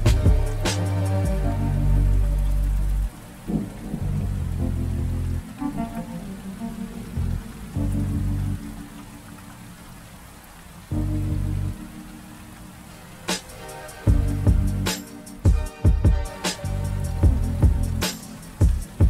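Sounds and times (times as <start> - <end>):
soft low music notes: 0.0 - 19.0
steady rain falling: 0.0 - 19.0.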